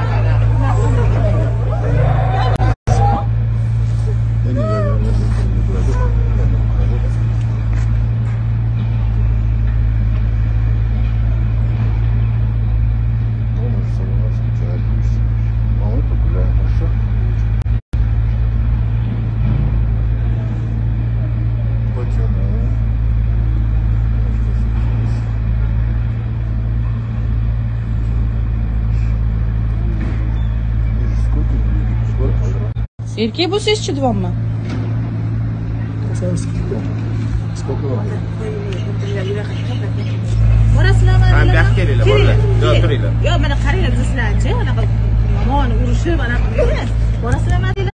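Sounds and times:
loud low rumble: 0.0s - 47.9s
faint indistinct voices: 19.8s - 32.8s, 34.6s - 47.9s.

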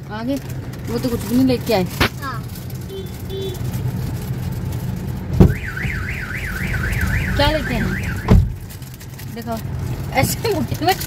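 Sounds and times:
car cabin hum: 5.3s - 8.8s
sharp thump: 5.4s - 5.6s, 8.2s - 8.6s
warbling electronic alarm: 5.5s - 8.3s.

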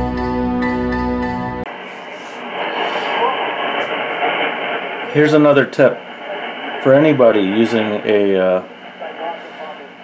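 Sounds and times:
theme music: 0.0s - 1.7s
weak radio broadcast in hiss: 1.7s - 10.0s.

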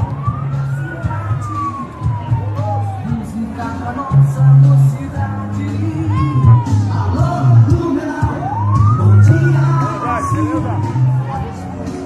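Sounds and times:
parade music: 0.0s - 12.0s.

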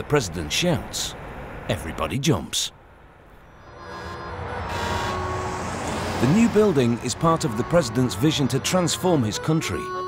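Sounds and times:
heavy truck engine and tyres: 0.0s - 10.0s.

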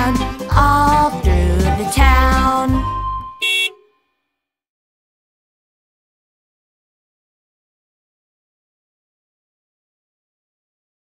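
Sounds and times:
children's song: 0.0s - 3.2s
cartoon bus horn honk: 2.8s - 4.1s.

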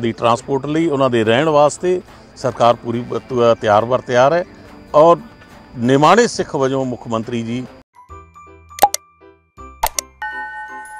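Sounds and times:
sharp click pops: 8.8s - 9.0s, 9.8s - 10.1s.

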